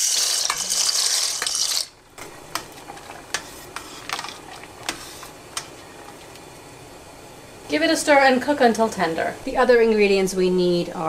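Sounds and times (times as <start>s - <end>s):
metal spoon stirring: 0.0s - 5.2s
pasta poured into boiling water: 0.0s - 6.1s.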